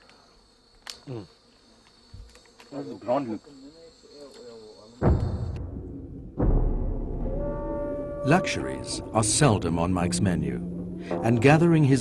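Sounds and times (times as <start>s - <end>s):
insects chorus: 0.0s - 5.6s, 8.2s - 12.0s.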